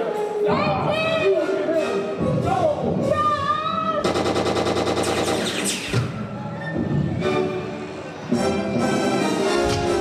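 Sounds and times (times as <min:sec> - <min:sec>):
machine-gun fire: 0:04.0 - 0:05.8.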